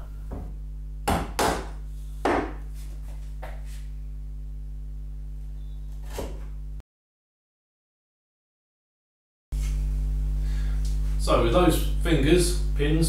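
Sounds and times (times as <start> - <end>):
low electrical hum: 0.0 - 6.8, 9.6 - 13.0
mallet striking wood chisel: 1.0 - 2.6.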